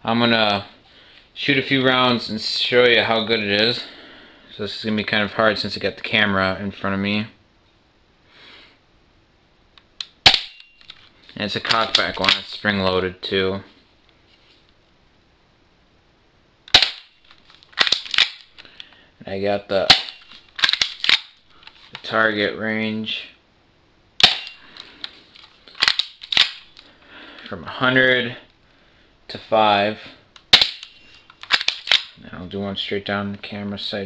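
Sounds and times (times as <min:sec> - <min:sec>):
bb pistol shot snap: 0:10.2 - 0:10.7, 0:16.7 - 0:17.1, 0:24.2 - 0:24.6, 0:30.5 - 0:30.9
pistol cocking clacks: 0:16.7 - 0:17.1, 0:17.8 - 0:18.5, 0:19.9 - 0:21.4, 0:24.2 - 0:24.6, 0:25.8 - 0:26.8, 0:30.4 - 0:32.2.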